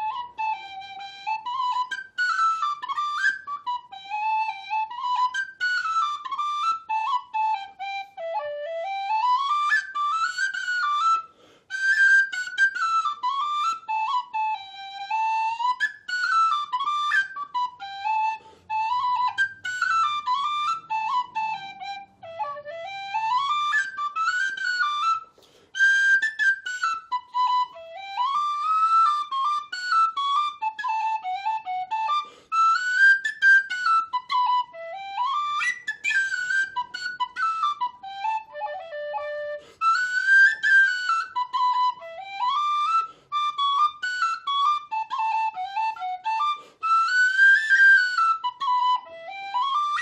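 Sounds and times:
tin whistle melody: 0.0s - 50.0s.

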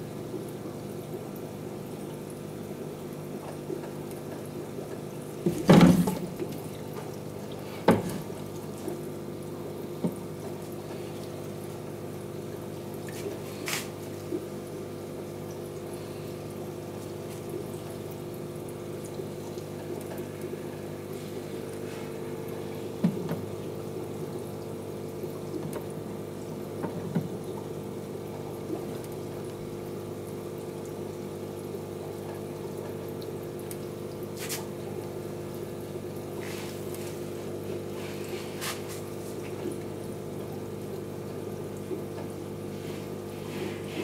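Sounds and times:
aquarium filter hum: 0.0s - 44.0s
water bubbling and trickling: 0.0s - 44.0s.

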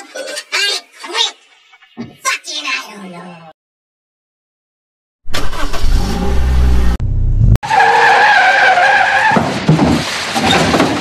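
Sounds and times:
car engine revving: 5.3s - 7.6s.

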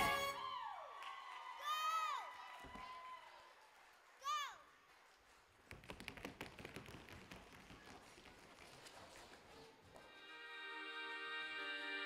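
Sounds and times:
tap shoes clattering on stage: 5.6s - 9.5s.

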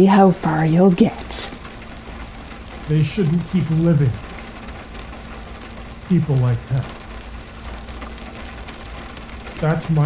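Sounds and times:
low hum: 0.0s - 10.0s
steady hiss: 0.1s - 10.0s.

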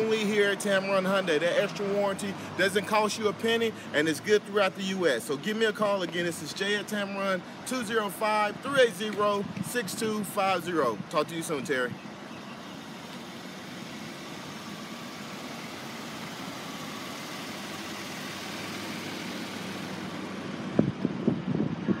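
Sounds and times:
vehicle noise: 0.0s - 22.0s.

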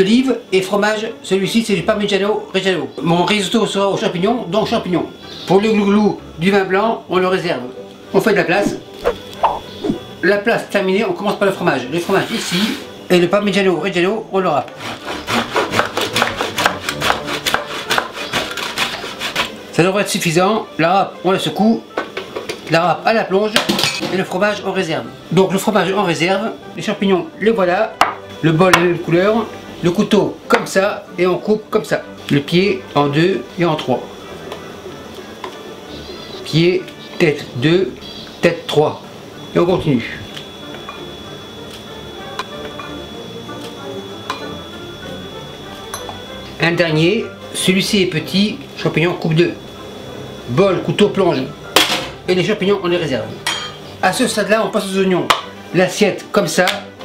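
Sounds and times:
soft background music: 0.0s - 57.0s
cheese grating on metal grater: 14.7s - 19.6s.

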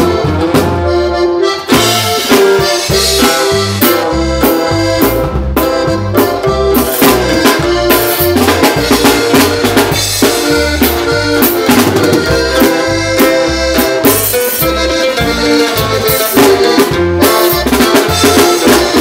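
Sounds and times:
accordion band music: 0.0s - 19.0s.

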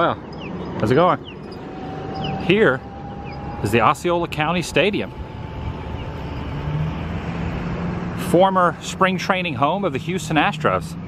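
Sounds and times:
motor traffic rumble: 0.0s - 11.0s.

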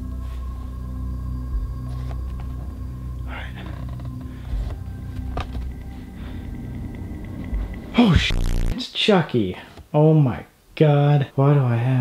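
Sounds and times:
droning background music: 0.0s - 8.7s.

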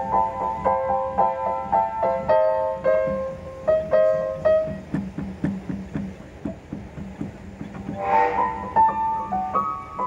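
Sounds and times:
upright piano playing: 0.0s - 10.0s.

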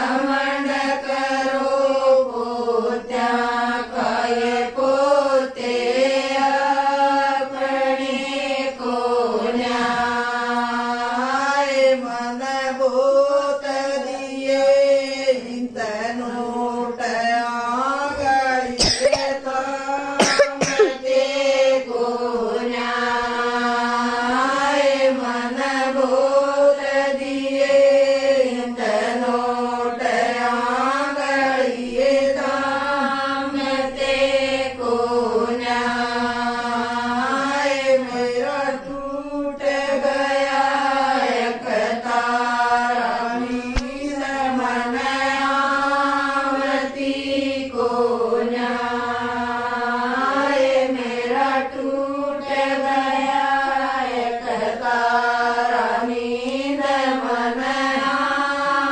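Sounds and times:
women singing in unison: 0.0s - 58.9s.

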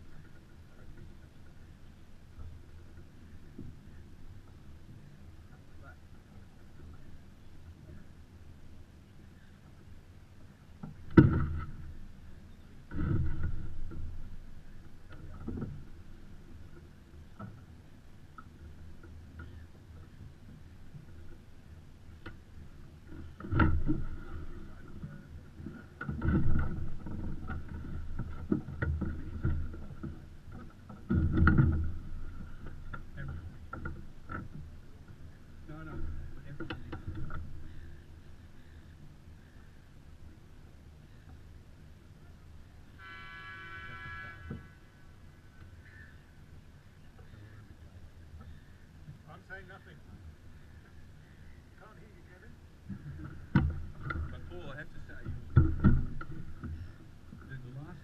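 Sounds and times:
faint steady hum: 0.0s - 58.0s
water slapping against hull: 10.8s - 39.6s, 46.5s - 58.0s.

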